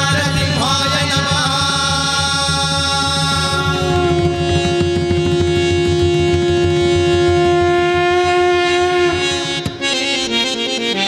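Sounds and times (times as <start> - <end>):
hand drum rhythm: 0.0 - 10.3
harmonium sustained note: 0.0 - 11.0.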